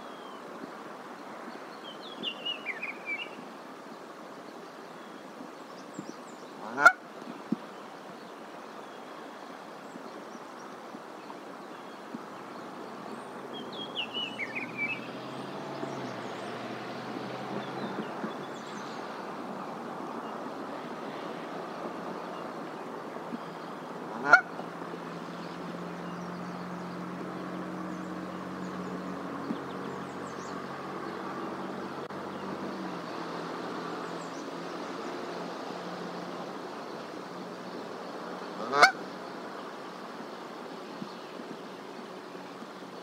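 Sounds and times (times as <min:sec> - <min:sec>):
goose honking: 0:06.6 - 0:07.0, 0:24.1 - 0:24.5, 0:38.6 - 0:39.0.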